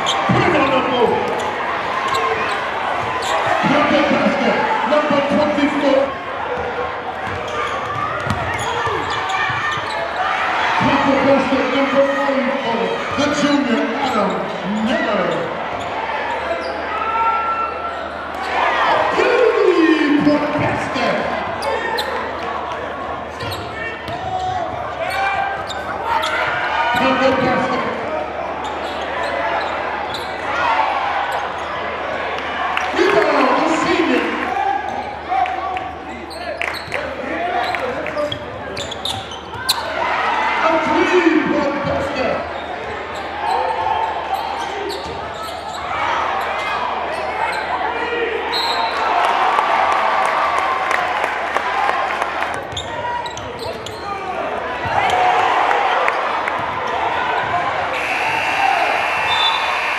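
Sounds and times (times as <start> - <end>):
crowd chatter: 0.0 - 59.9
basketball bouncing on wooden floor: 7.2 - 8.6.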